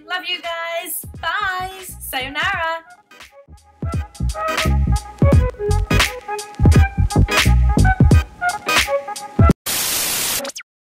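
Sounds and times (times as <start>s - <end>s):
heavy bass hit: 3.6s - 6.0s, 6.6s - 8.3s
electronic music: 3.6s - 10.6s
white-noise static burst: 9.7s - 10.6s.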